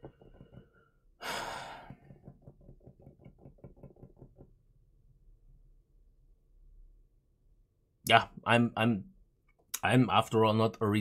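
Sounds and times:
man sighing: 1.2 - 2.2.

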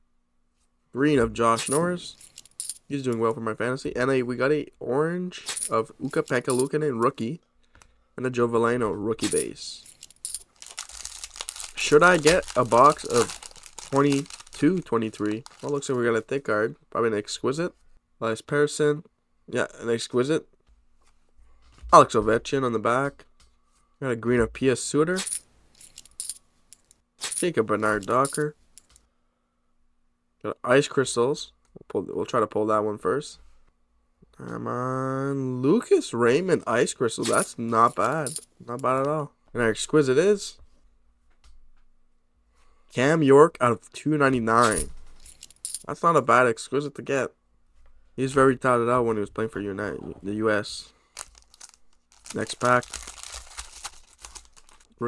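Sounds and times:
trading cards rustling and clicking: 9.2 - 16.0, 37.2 - 38.5, 44.6 - 45.8, 51.0 - 55.0
foil wrapper tearing and crinkling: 10.5 - 15.8, 51.2 - 54.9.

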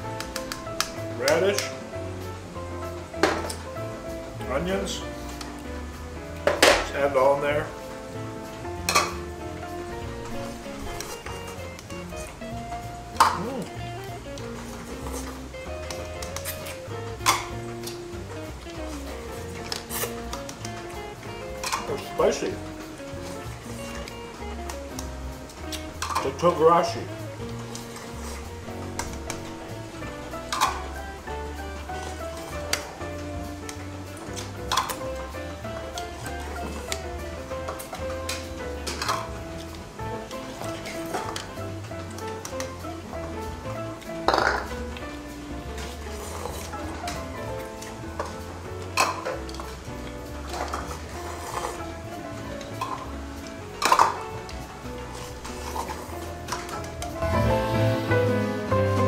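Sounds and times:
background music with bass line: 0.0 - 59.0
bowls and dishes clinking: 8.8 - 9.2, 13.2 - 13.7, 14.7 - 18.0, 21.6 - 22.1, 25.6 - 26.5, 30.4 - 31.1, 37.6 - 39.3, 44.3 - 44.8, 49.0 - 49.7, 50.4 - 51.8, 53.8 - 54.5.

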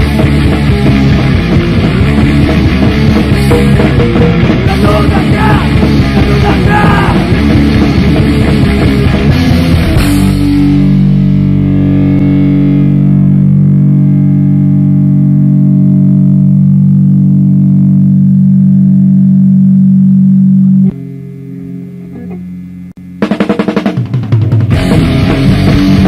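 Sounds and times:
distorted electric guitar chord: 0.0 - 24.0, 24.6 - 26.0
quiet held note: 22.0 - 22.7.

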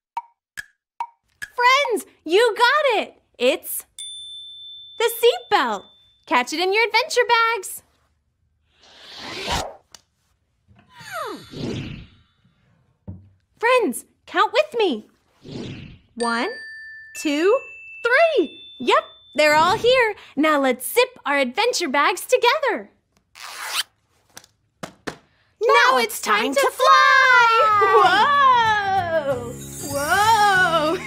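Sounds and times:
zipper pulled shut: 23.3 - 24.0.

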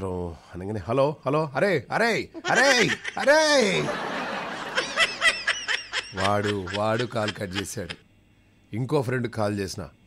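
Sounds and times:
person laughing: 2.4 - 8.0.

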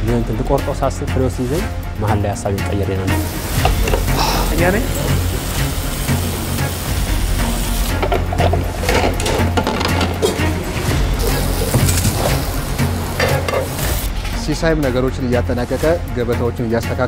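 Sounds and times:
background music: 0.0 - 17.0
food sizzling in a pan: 3.1 - 8.2, 11.1 - 14.1
metal utensils clicking and scraping: 7.9 - 10.6, 11.2 - 12.5, 13.2 - 14.1.

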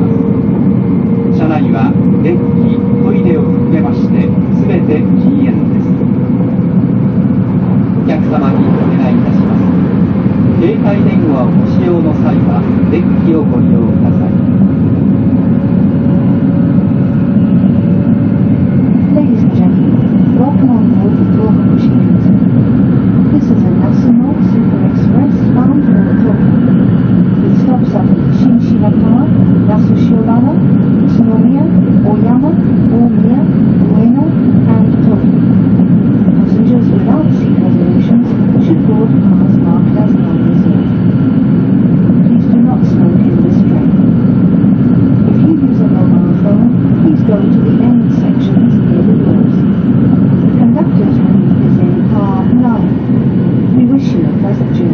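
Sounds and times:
train rumble inside cabin: 0.0 - 54.9.

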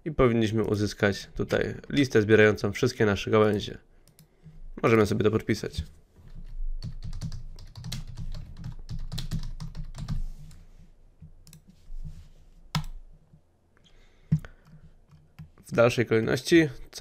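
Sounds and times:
typing on computer keyboard: 6.8 - 10.2.

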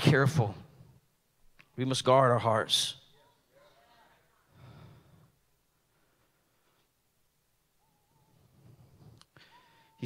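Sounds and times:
faint low noise: 0.0 - 10.0.

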